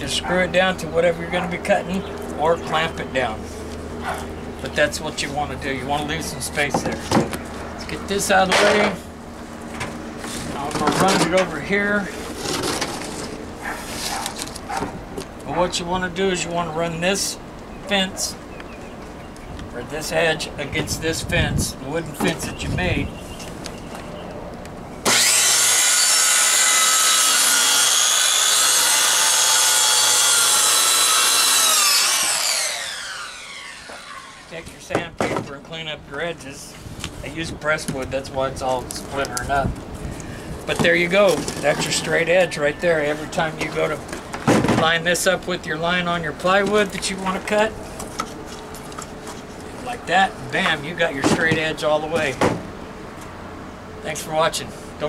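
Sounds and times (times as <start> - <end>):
circular saw cutting wood: 25.0 - 34.7.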